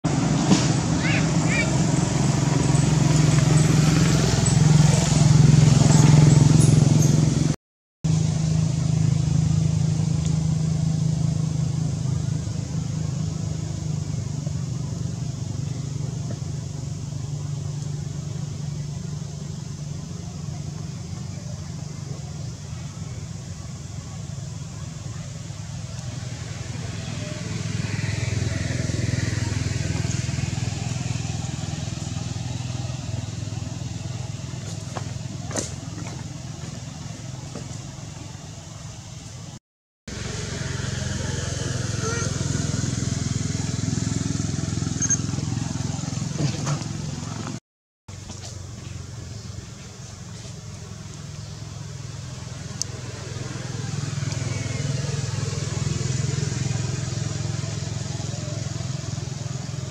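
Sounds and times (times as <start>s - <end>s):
outdoor background noise: 0.0s - 59.9s
vehicle engine running: 0.0s - 59.9s
faint voices: 0.8s - 4.0s, 12.1s - 39.4s.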